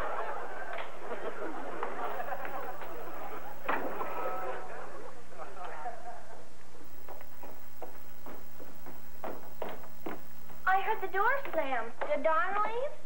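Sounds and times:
studio audience laughter: 0:00.0 - 0:04.7.

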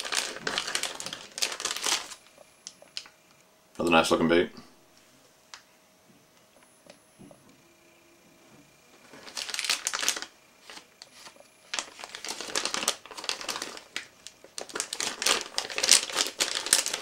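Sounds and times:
plastic package crinkling: 0:00.0 - 0:03.1, 0:09.1 - 0:17.0.

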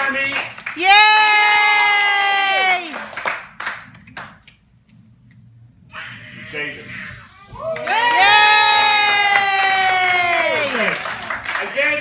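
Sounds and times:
person cheering yay: 0:07.6 - 0:11.0.

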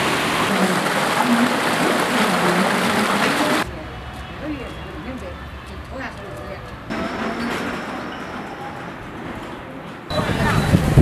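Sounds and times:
steady street rushing noise: 0:00.0 - 0:11.0.

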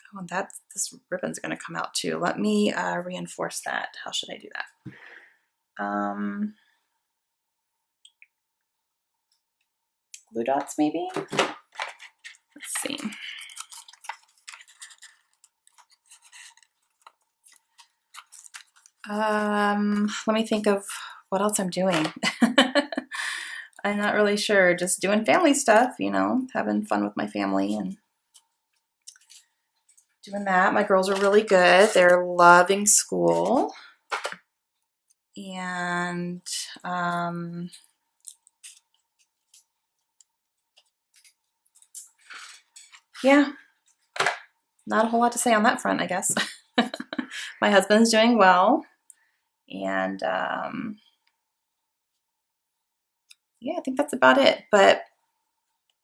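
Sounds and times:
paper rustling and crinkling: 0:11.2 - 0:19.1, 0:28.3 - 0:32.3.

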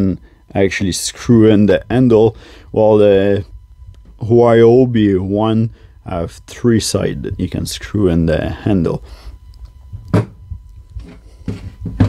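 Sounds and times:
tool knocking on wooden bench: 0:10.1 - 0:10.4, 0:11.5 - 0:12.0.

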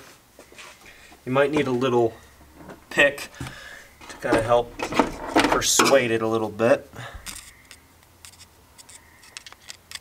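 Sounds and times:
small metal clicks and scrapes: 0:07.2 - 0:10.0.

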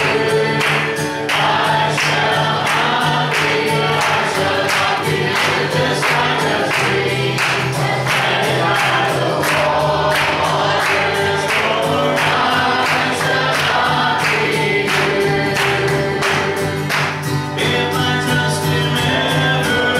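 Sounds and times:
man singing gospel song: 0:00.0 - 0:16.7, 0:17.4 - 0:19.9
acoustic guitar strumming: 0:00.0 - 0:19.9.

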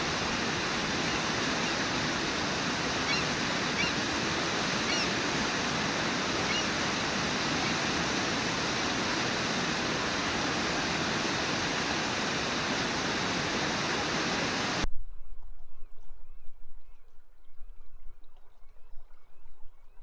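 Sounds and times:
waterfall rushing: 0:00.0 - 0:14.8.

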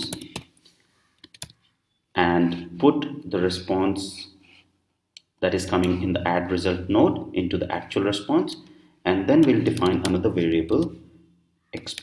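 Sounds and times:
computer keyboard typing: 0:00.0 - 0:00.6, 0:01.2 - 0:01.6.

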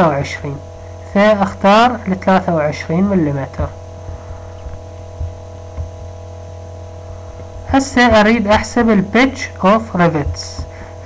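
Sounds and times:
electrical hum: 0:00.0 - 0:11.0
faint low knocks: 0:03.6 - 0:06.3.

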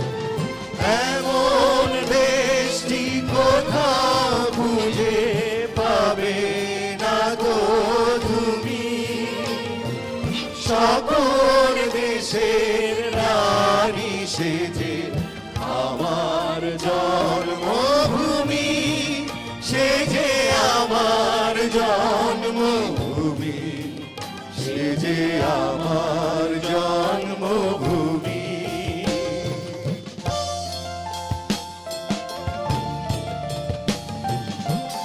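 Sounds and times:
group of people singing: 0:00.0 - 0:30.3
musical accompaniment: 0:00.0 - 0:35.0.

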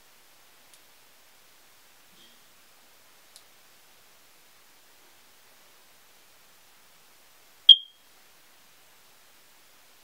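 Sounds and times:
faint steady hiss: 0:00.0 - 0:10.0
short high-pitched beep: 0:07.7 - 0:08.0.

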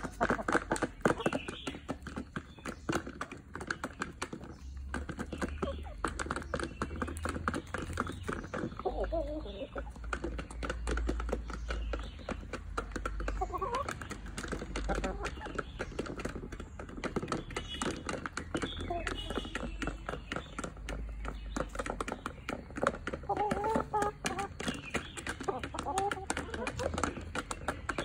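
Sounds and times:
chickens clucking: 0:00.0 - 0:28.0
chickens pecking feed: 0:00.0 - 0:28.0.

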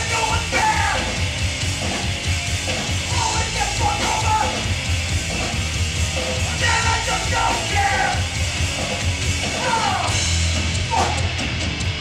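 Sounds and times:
shouted vocals: 0:00.0 - 0:01.2, 0:03.0 - 0:04.7, 0:06.4 - 0:08.4, 0:09.5 - 0:10.2, 0:10.8 - 0:11.4
bass guitar: 0:00.0 - 0:12.0
distorted electric guitars: 0:00.0 - 0:12.0
drums: 0:00.0 - 0:12.0.

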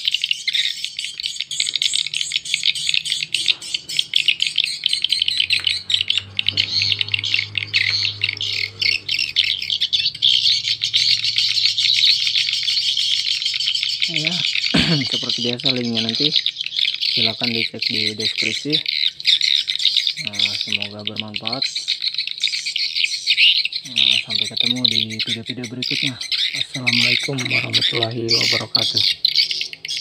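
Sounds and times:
recorded bird chirps from speakers: 0:00.0 - 0:30.0.

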